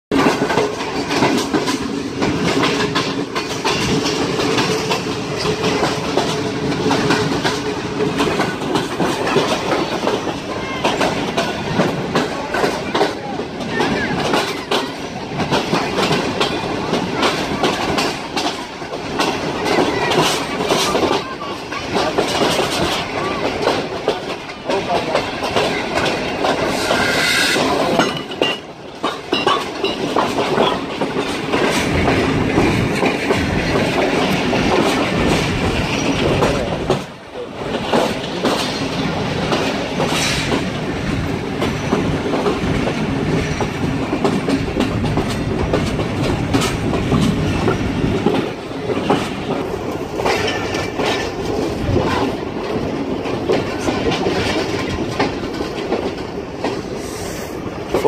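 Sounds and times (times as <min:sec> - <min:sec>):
train wheels clattering over rail joints: 0:00.1 - 0:58.0.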